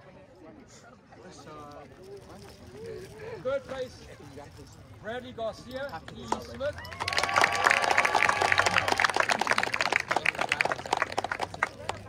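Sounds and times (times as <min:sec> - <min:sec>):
crowd clapping: 0:06.2 - 0:12.0.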